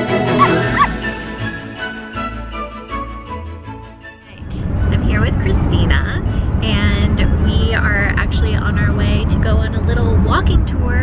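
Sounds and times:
holiday intro music: 0:00.0 - 0:07.5
cartoon dog yips: 0:00.4 - 0:01.0.

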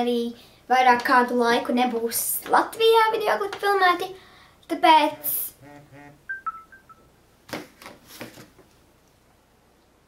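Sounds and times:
brief two-part hum: 0:05.5 - 0:06.4
alternating electronic beeps: 0:05.6 - 0:07.1.

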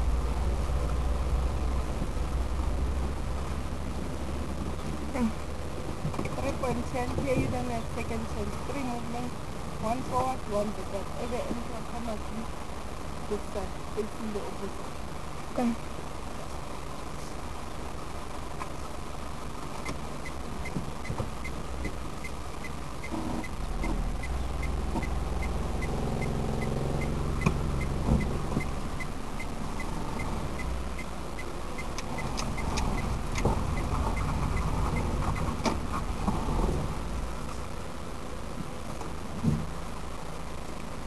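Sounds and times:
car engine running: 0:00.0 - 0:41.0
turn signal ticking: 0:19.8 - 0:35.6.

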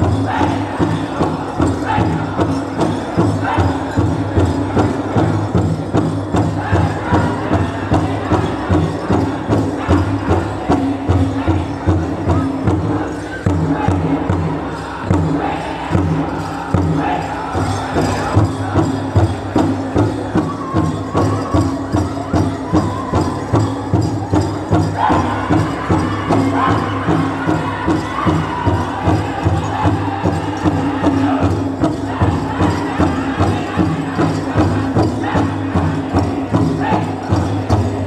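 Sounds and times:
group singing in unison: 0:00.0 - 0:21.4, 0:24.3 - 0:38.0
large drum beat: 0:00.0 - 0:38.0.

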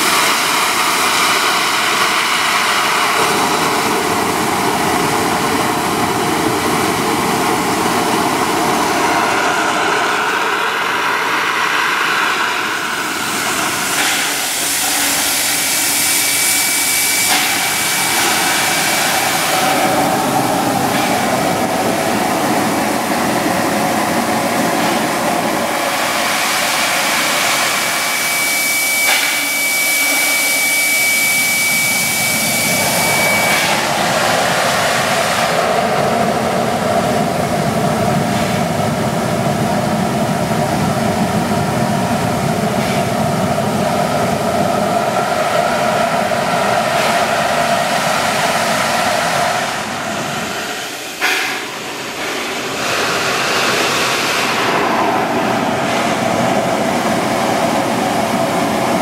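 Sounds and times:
steam blasting hiss: 0:00.0 - 0:59.0
thin steady high tone: 0:27.7 - 0:34.7.

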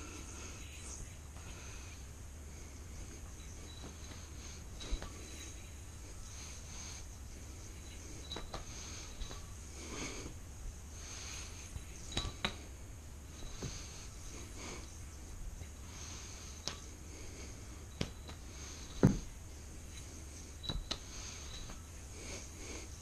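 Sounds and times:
faint hum: 0:00.0 - 0:23.0.

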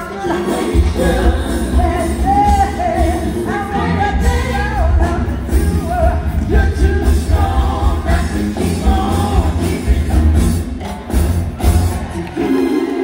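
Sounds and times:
live band playing: 0:00.0 - 0:13.0.

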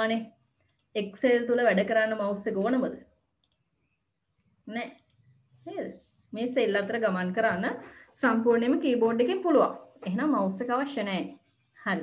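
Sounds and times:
person speaking: 0:05.7 - 0:11.3.

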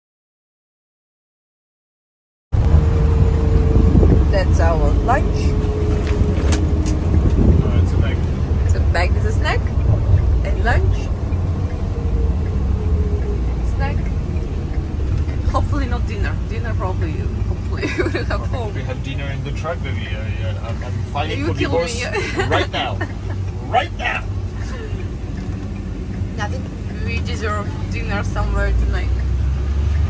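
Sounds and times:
truck engine and road drone: 0:02.6 - 0:30.0.

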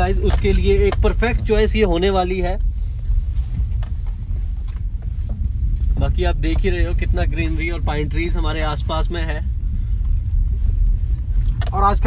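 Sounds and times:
car engine rumble: 0:00.0 - 0:12.0
tyres on dirt road: 0:00.0 - 0:12.0.

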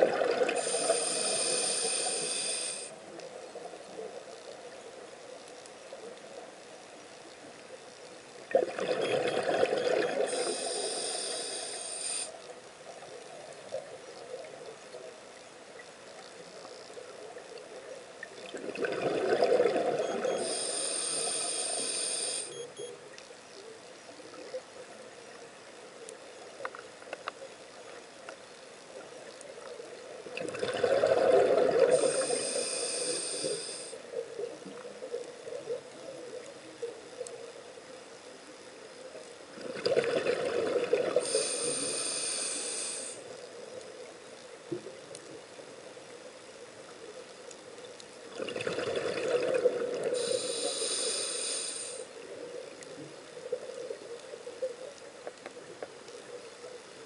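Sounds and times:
exhaled bubbles underwater: 0:00.0 - 0:01.4, 0:08.5 - 0:10.8, 0:18.4 - 0:20.5, 0:30.3 - 0:32.6, 0:39.6 - 0:41.8, 0:48.3 - 0:50.6
regulator hiss: 0:00.4 - 0:03.3, 0:10.1 - 0:12.5, 0:20.1 - 0:22.6, 0:31.9 - 0:34.0, 0:41.2 - 0:43.4, 0:50.1 - 0:52.2
faint clicks: 0:09.5 - 0:40.3, 0:46.8 - 0:48.7, 0:49.4 - 0:57.0.

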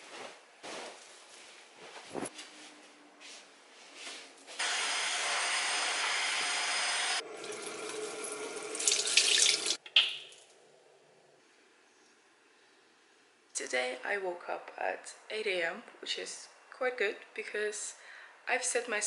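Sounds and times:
bedding rustling: 0:00.0 - 0:04.6
vacuum cleaner running: 0:04.6 - 0:08.5.

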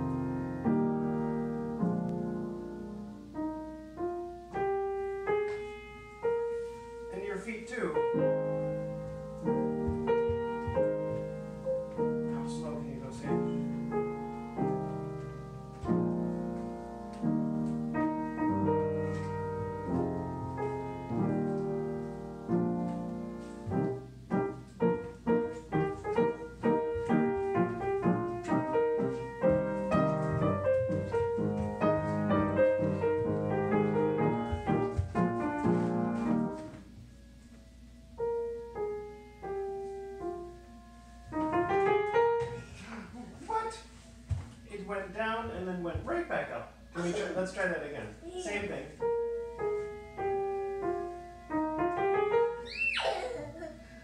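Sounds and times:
upright piano playing: 0:00.0 - 0:54.0.

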